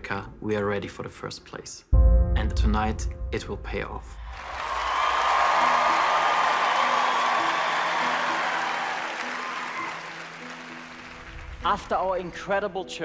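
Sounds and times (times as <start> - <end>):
soft slow melody: 2.0 - 4.2
audience applause: 4.3 - 11.8.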